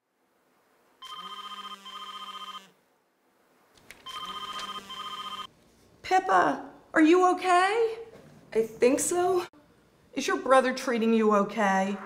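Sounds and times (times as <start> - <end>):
telephone ringing: 1.0 - 2.7, 4.0 - 5.5.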